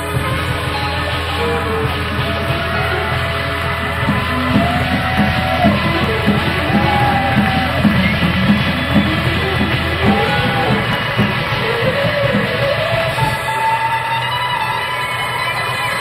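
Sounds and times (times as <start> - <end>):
drum beat: 0.0 - 13.7
live funk-rock band: 0.0 - 16.0.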